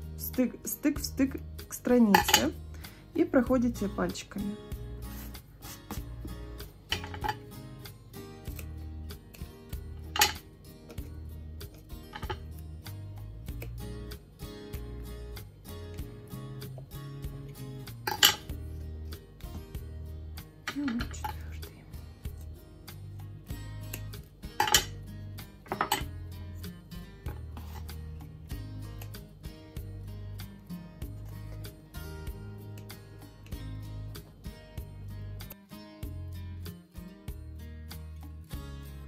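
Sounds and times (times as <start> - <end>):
background music: 0.0 - 39.0.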